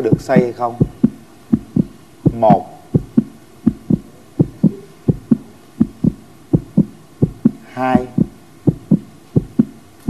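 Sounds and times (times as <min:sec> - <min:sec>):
heartbeat thumps: 0:00.0 - 0:09.8.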